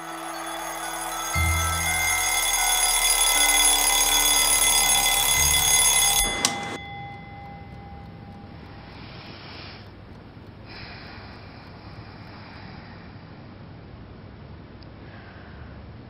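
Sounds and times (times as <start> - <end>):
suspense film score drone: 0.0 - 14.8.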